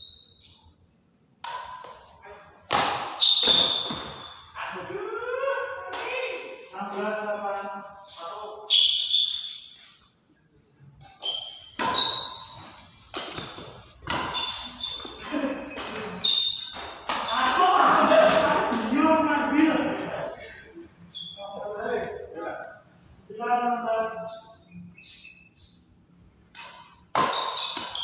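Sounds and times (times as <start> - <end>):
racket striking shuttlecock: 1.4 - 1.9, 2.7 - 4.2, 11.6 - 14.6, 26.5 - 28.0
shoes squeaking on floor: 3.1 - 4.6, 8.1 - 10.1, 11.0 - 18.6, 21.0 - 21.8, 27.2 - 28.0
players calling out: 14.4 - 22.0.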